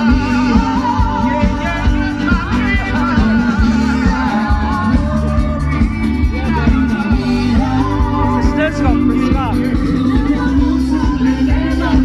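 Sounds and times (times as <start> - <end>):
heavy bass beat: 0.0 - 12.0
live band over loudspeakers: 0.0 - 12.0
person singing: 0.0 - 12.0.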